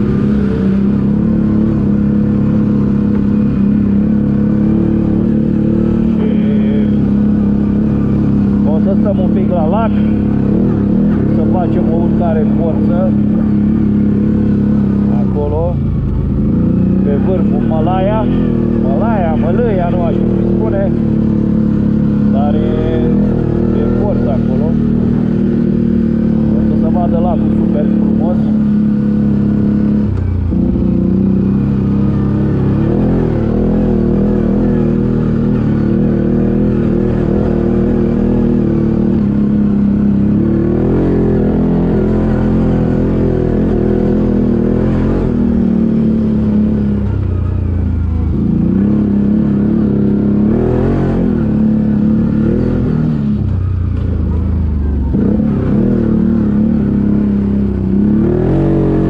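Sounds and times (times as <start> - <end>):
atv engine revving: 0.0 - 59.0.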